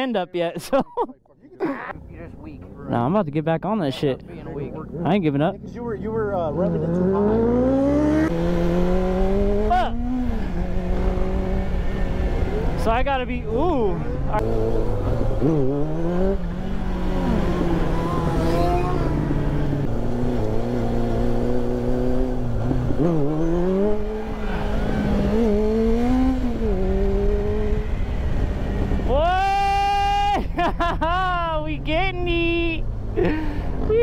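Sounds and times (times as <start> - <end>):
motorcycle engine revving: 4.4 - 29.2.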